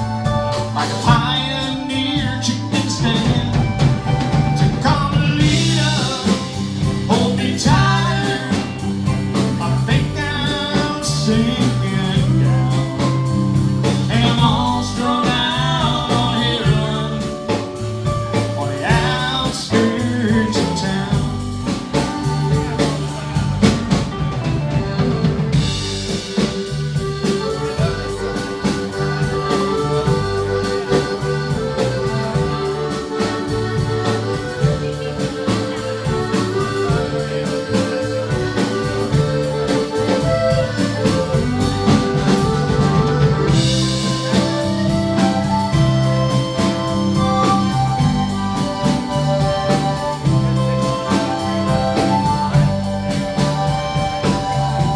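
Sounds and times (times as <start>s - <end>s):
bass: 0.0s - 54.9s
drum kit: 0.0s - 54.9s
electric guitars: 0.0s - 54.9s
keyboard: 0.0s - 54.9s.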